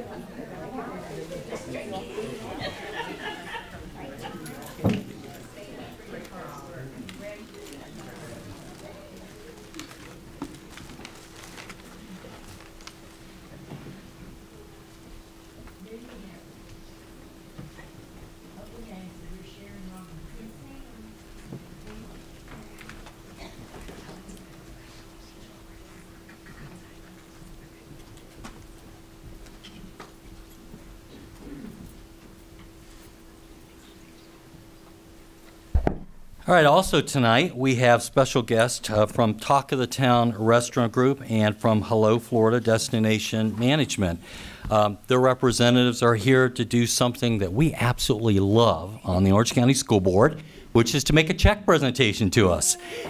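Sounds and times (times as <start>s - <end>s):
murmur of people talking: 0.0s - 35.8s, 36.4s - 53.0s
steady low hum: 0.0s - 53.0s.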